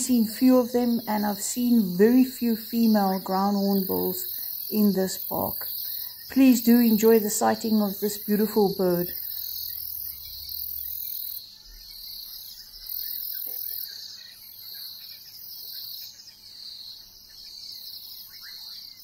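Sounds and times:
high-pitched insect chorus: 0:00.0 - 0:19.0.

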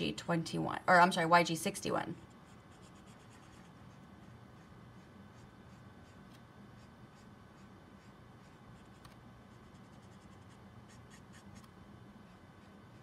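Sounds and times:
low steady hum: 0:00.0 - 0:13.0
marker strokes on card: 0:02.2 - 0:13.0.

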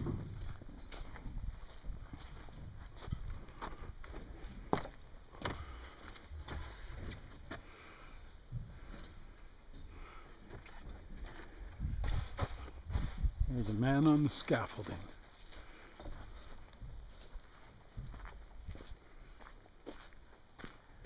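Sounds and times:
wind rumble on microphone: 0:11.6 - 0:13.7.

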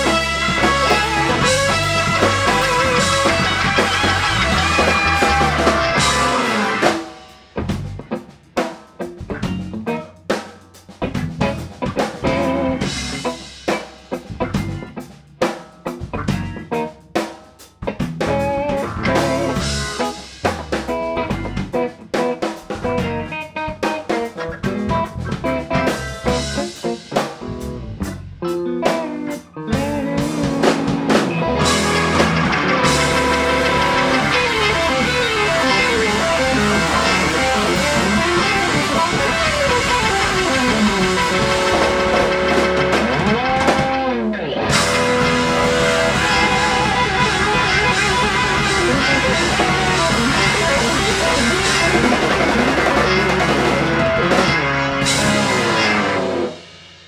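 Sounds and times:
live rock band playing: 0:00.0 - 0:57.0
choppy drum hits: 0:29.8 - 0:44.0.

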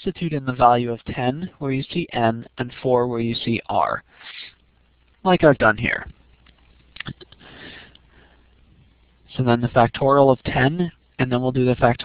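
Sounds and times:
breath drawn in through nose: 0:04.2 - 0:04.6.

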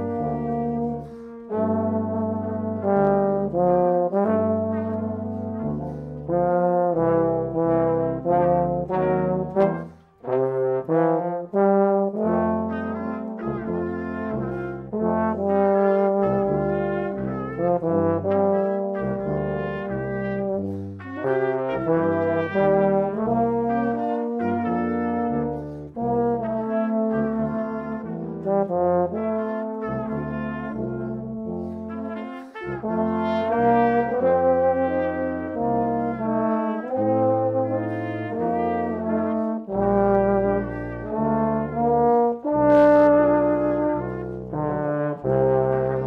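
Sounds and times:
brass quintet playing: 0:00.0 - 0:46.0
tuba notes: 0:00.0 - 0:46.0.

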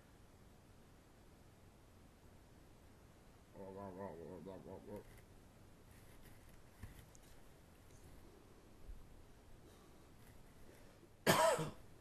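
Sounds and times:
person coughing: 0:11.2 - 0:11.8.

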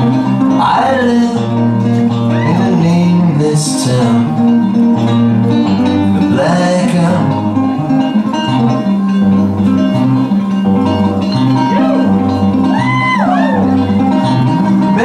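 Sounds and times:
person singing: 0:00.0 - 0:04.8, 0:05.8 - 0:07.7, 0:11.5 - 0:15.0
guitar playing: 0:00.0 - 0:15.0.

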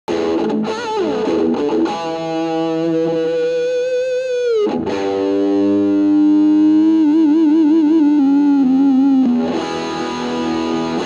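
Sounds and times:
distorted electric guitar: 0:00.1 - 0:11.0.

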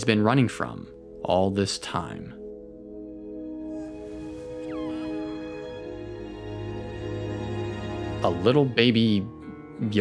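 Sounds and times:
orchestral film music chords: 0:02.4 - 0:10.0
high wavering creature coo: 0:03.8 - 0:05.9.

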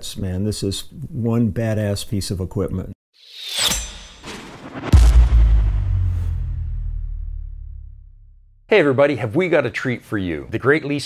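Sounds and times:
low drone: 0:04.1 - 0:08.3
deep cinematic impact boom: 0:04.2 - 0:08.6.

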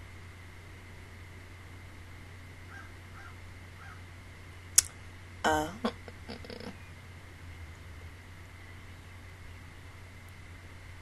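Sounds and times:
low electrical hum: 0:00.0 - 0:11.0
person's creaky murmur: 0:05.5 - 0:06.8.

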